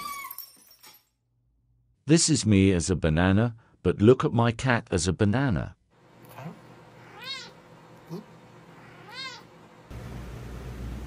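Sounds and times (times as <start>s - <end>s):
cat meowing: 6.4s - 8.2s, 8.8s - 9.5s.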